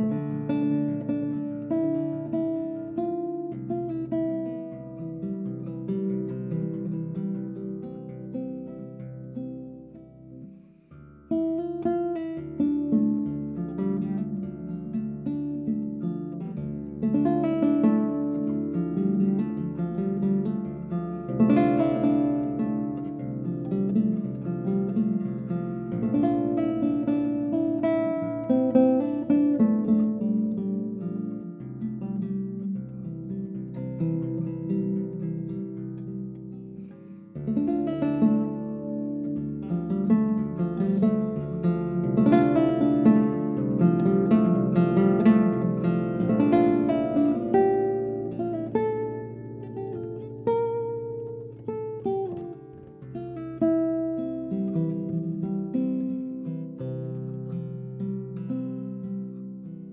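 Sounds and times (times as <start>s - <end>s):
classical guitar slow melody: 0.0s - 59.9s.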